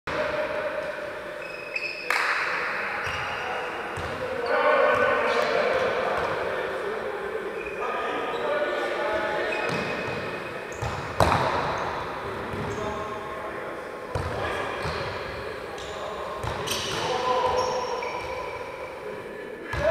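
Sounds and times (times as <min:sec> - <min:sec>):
ball kicks echoing: 0:09.7 - 0:11.9.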